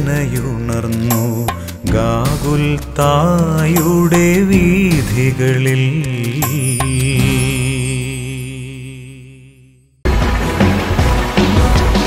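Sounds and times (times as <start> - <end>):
sharp percussion hits: 6.2 - 8.6, 10.0 - 12.0.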